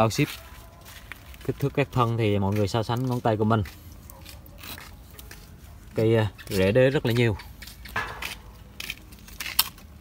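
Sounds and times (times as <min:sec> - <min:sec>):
crackles of handling dry roots: 0:00.0 - 0:10.0.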